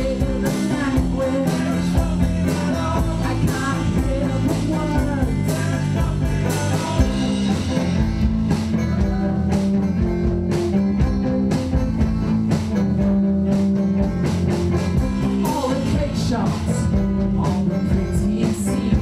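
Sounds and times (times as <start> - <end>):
bass notes: 0.0 - 19.0
strummed guitar: 0.0 - 19.0.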